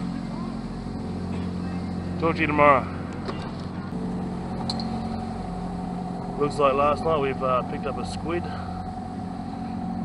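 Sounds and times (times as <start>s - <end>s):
low even hum: 0.0s - 10.0s.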